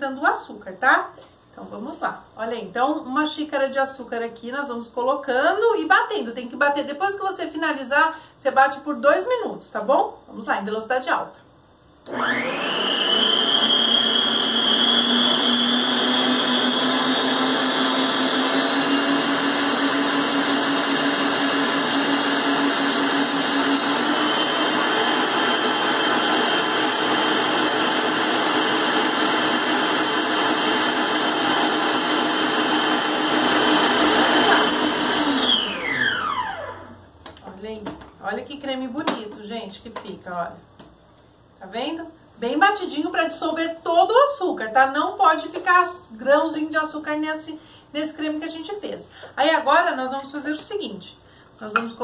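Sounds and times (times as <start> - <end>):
electric stand mixer whisking: 12.1 - 36.9.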